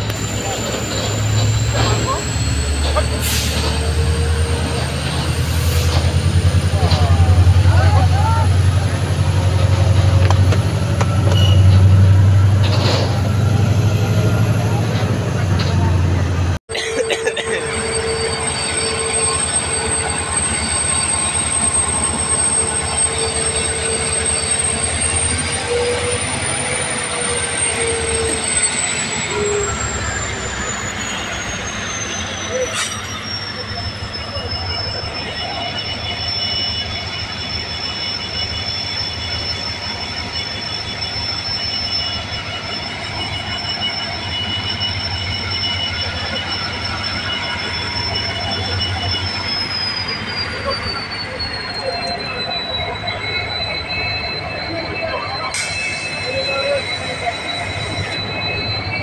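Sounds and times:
diesel locomotive rumble: 0:00.0 - 0:59.0
train wheels squealing on rails: 0:00.0 - 0:59.0.

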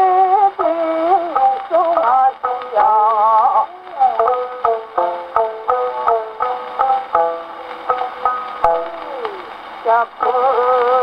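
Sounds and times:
person singing: 0:00.0 - 0:11.0
shamisen plucked notes: 0:03.6 - 0:10.3.

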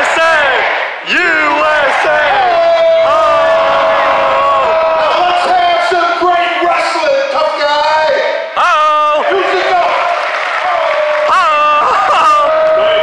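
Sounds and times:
crowd chanting: 0:00.0 - 0:06.2
crowd shouting: 0:00.0 - 0:06.6, 0:08.6 - 0:13.0
long held shout: 0:00.2 - 0:05.6, 0:10.6 - 0:13.0.

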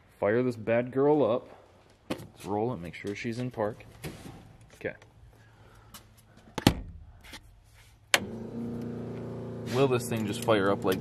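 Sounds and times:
starter motor cranking engine: 0:08.2 - 0:11.0.

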